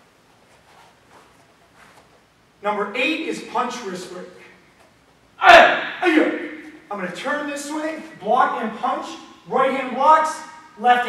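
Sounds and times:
rustling of uniforms: 0.0 - 2.5.

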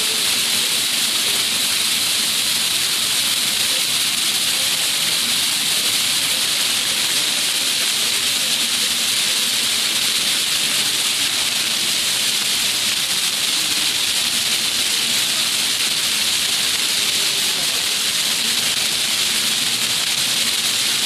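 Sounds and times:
fountain water jets splashing: 0.0 - 21.0.

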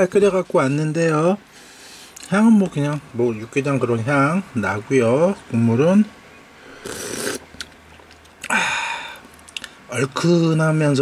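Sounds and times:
slurping soup from a spoon: 6.8 - 7.5.

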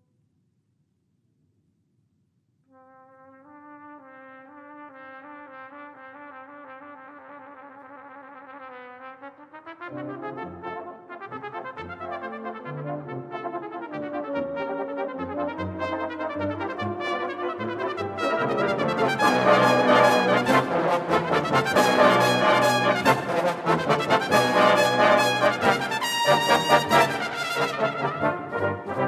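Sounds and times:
brass band playing: 3.0 - 29.0.

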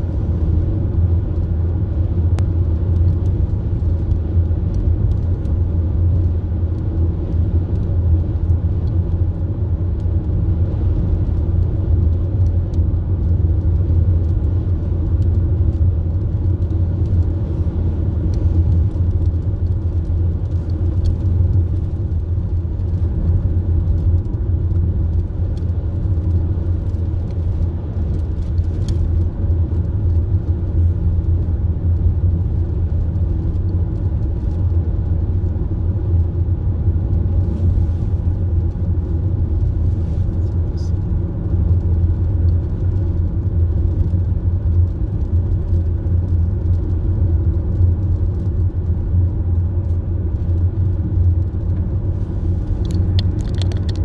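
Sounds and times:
car interior driving rumble: 0.0 - 54.0.

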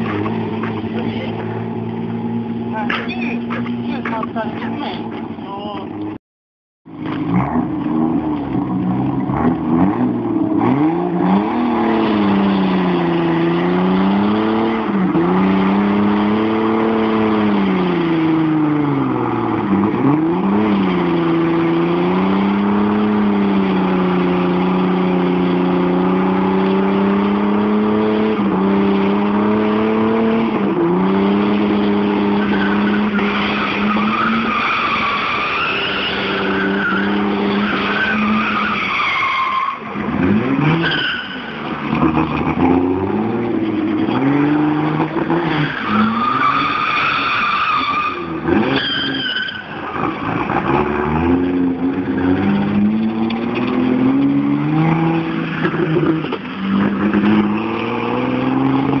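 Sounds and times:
car engine revving: 0.0 - 6.2, 6.9 - 59.0
tyres squealing: 31.9 - 40.0, 40.6 - 42.2, 45.2 - 50.6.

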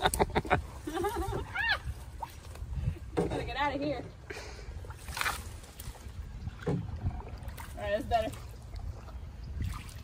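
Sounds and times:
branches rustling against canoe: 0.0 - 10.0
wind rumble on microphone: 0.0 - 10.0.

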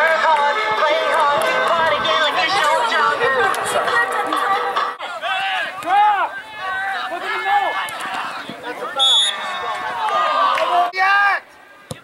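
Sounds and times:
song with singing: 0.0 - 5.2
crowd noise: 0.0 - 12.0
voices calling and shouting: 0.4 - 12.0.

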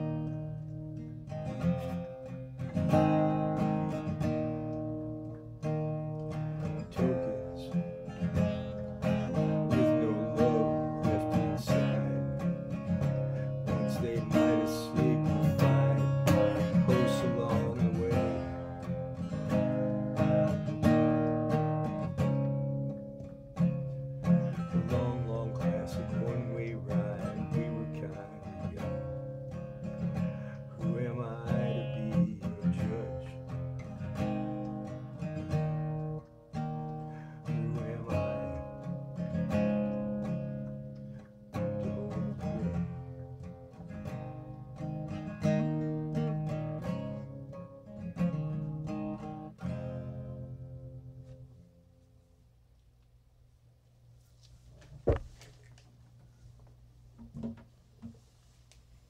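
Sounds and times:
acoustic guitar strumming chords: 0.0 - 52.2.

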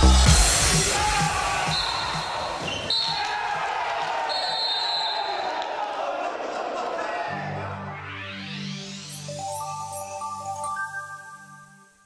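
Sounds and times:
shrill whistle blasts: 1.5 - 3.4, 4.2 - 5.5.

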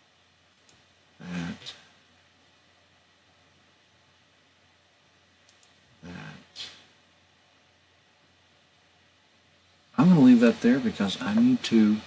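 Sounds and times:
man saying a word: 1.2 - 1.9, 6.0 - 6.9.

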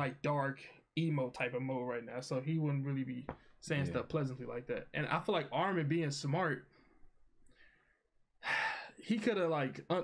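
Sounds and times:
man speaking: 0.0 - 6.7, 8.9 - 10.0
man breathing: 6.7 - 9.0.

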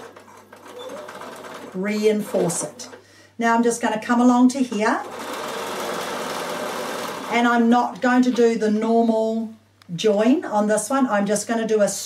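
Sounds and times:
sewing machine stitching: 0.0 - 3.0, 5.0 - 8.4.

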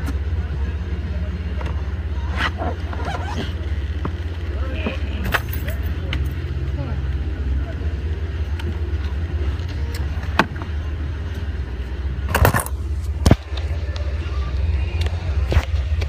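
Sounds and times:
off-road vehicle engine rumble: 0.0 - 16.0.

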